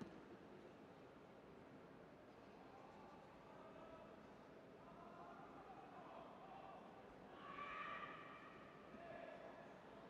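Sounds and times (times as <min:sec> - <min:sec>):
faint arena background: 0:00.0 - 0:00.7.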